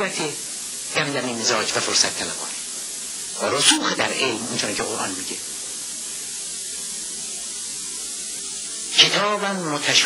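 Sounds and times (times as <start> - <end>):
video recording hiss: 0.0 - 10.0.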